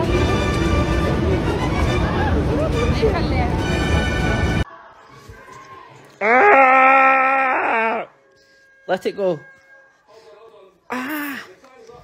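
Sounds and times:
dog howling: 0:06.2 - 0:08.2.

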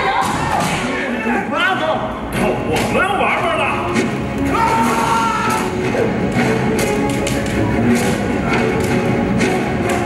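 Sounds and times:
people yelling and grunting: 0:00.0 - 0:06.3.

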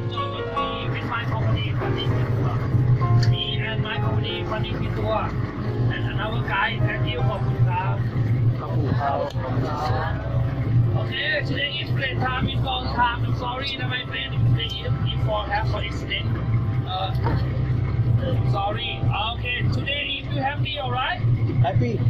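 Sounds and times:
background music: 0:00.0 - 0:22.0
speedboat engines droning: 0:00.0 - 0:22.0.

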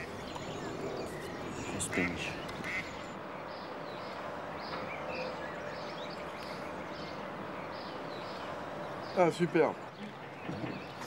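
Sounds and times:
outdoor background hiss: 0:00.0 - 0:11.0
ducks quacking: 0:01.4 - 0:03.2.

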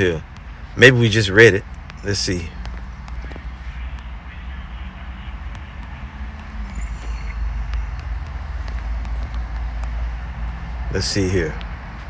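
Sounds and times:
faint hum: 0:00.1 - 0:11.6.

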